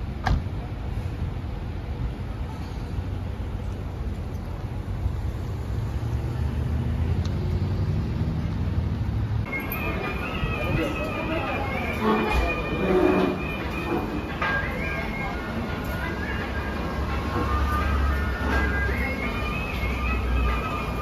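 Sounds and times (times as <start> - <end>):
vehicle engine rumble: 0.0 - 21.0.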